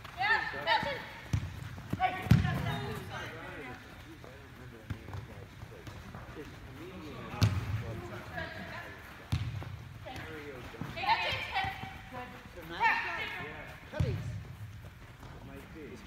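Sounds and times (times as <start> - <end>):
soccer ball kick thuds: 0.7 - 3.2, 7.2 - 8.2, 9.2 - 12.0, 13.9 - 15.4.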